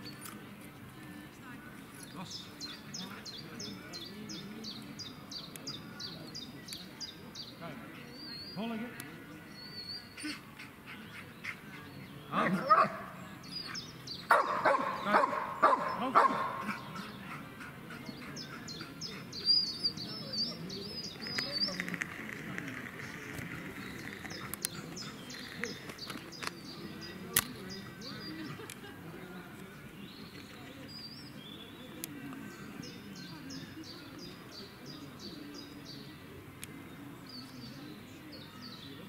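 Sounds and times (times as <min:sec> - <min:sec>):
birds chirping faintly: 0:01.0 - 0:39.0
dog barking: 0:12.6 - 0:13.1, 0:14.3 - 0:16.8.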